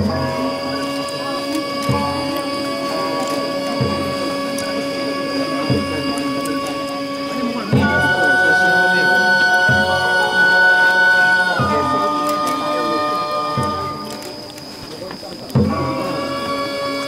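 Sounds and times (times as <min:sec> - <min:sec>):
long held notes: 0:00.0 - 0:17.0
low drum strokes: 0:00.0 - 0:17.0.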